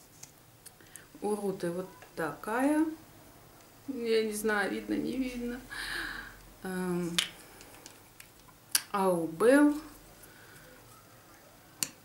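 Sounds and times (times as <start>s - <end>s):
woman's wordless voice: 1.2s - 3.0s, 3.9s - 5.8s, 6.6s - 7.3s, 8.8s - 10.0s.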